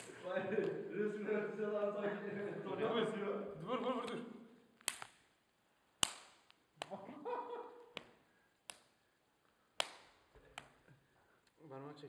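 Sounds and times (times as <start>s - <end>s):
sharp hand slaps: 4.8s - 5.3s, 6.0s - 7.0s, 7.9s - 9.0s, 9.8s - 10.8s.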